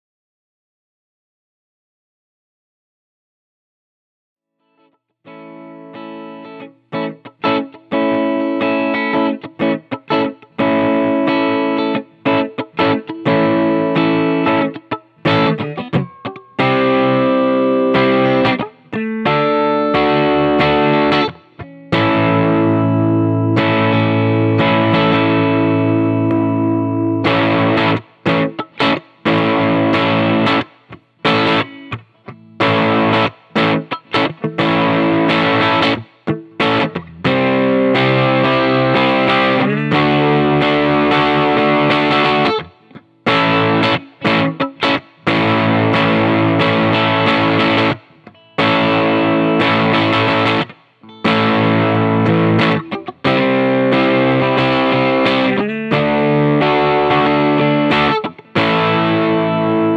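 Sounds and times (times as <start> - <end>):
electric guitar chords: 5.3 - 59.9.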